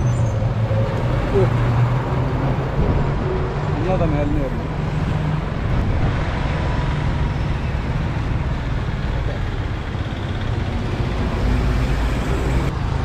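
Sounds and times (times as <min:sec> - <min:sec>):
road traffic: 0:00.0 - 0:13.0
truck engine rumble: 0:00.0 - 0:13.0.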